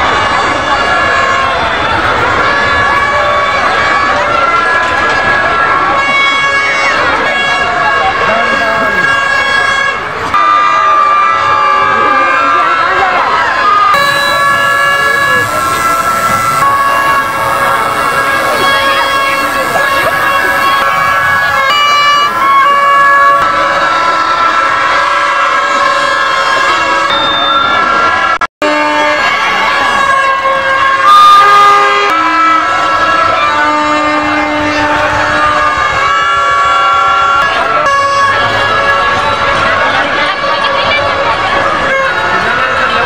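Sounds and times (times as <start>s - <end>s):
crowd chatter: 0.0s - 43.0s
toy horns and whistles tooting: 13.8s - 28.0s.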